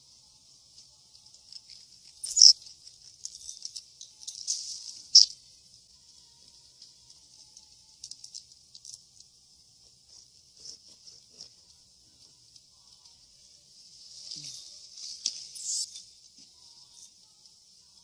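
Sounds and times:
squirrel squeaking and chittering: 2.1s - 2.7s, 5.0s - 5.4s, 15.5s - 16.1s.

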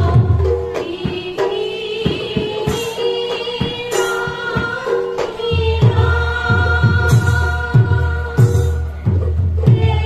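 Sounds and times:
group devotional singing: 0.8s - 10.0s.

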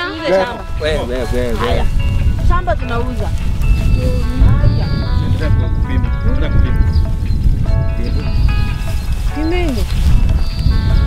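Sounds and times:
music with long held chords: 0.0s - 11.0s.

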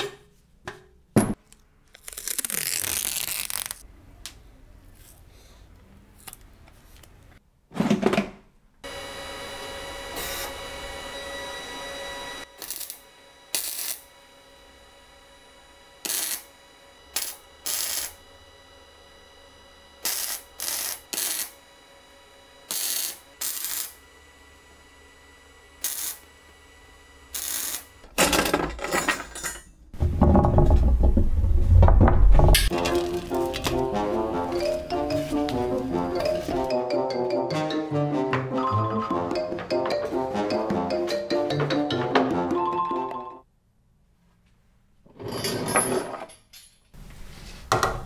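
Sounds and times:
arc welding bursts: 10.0s - 10.6s, 12.4s - 14.2s, 16.0s - 18.2s, 20.0s - 21.7s, 22.6s - 24.0s, 25.6s - 28.1s.

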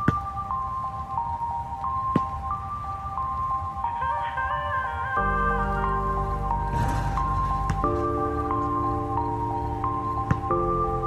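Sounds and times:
electronic bell-like melody: 0.0s - 11.0s.

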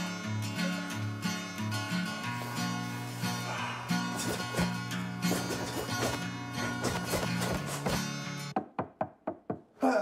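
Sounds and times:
background music: 0.0s - 9.3s.

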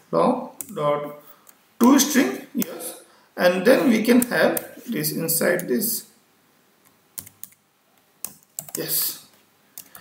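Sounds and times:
computer keyboard keystrokes: 7.2s - 7.6s, 8.2s - 8.9s.

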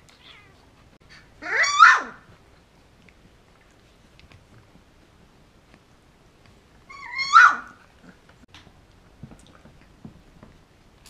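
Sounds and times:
puppy squealing: 1.4s - 2.2s, 6.9s - 7.8s.

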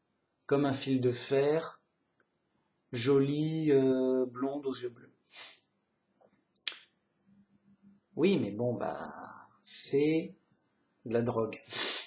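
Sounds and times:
sharp mouth click: 6.6s - 6.8s.

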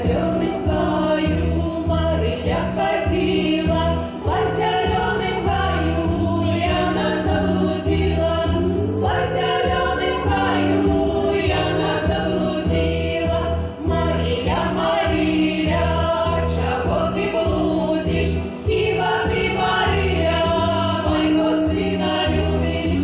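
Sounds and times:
low steady accompaniment: 0.0s - 23.0s
women singing folk song together: 0.0s - 23.0s.

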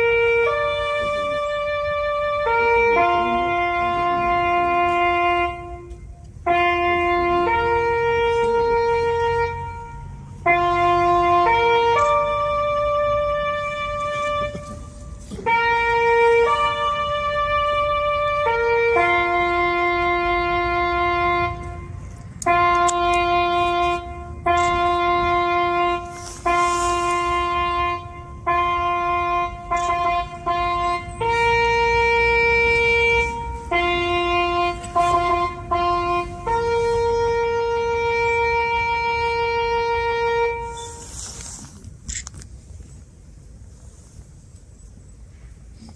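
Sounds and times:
solo brass bugle call: 0.0s - 41.5s.

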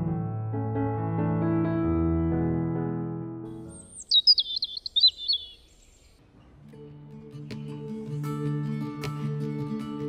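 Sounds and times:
music: 0.0s - 4.0s, 6.3s - 10.0s
piano music: 0.0s - 5.3s
songbird chirping: 3.6s - 6.2s.

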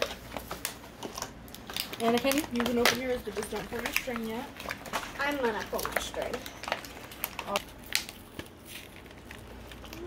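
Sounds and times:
foil bag crinkling: 0.0s - 10.0s
plastic packaging click: 0.0s - 10.0s.

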